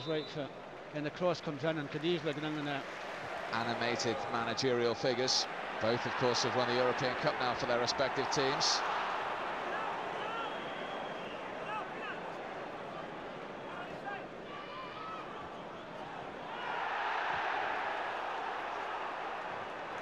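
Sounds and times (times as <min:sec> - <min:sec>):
stadium crowd voices: 0:00.0 - 0:20.0.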